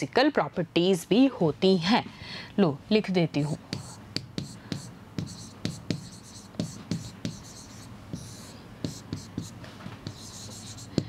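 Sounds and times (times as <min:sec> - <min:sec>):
marker writing on a board: 0:03.4 - 0:11.0.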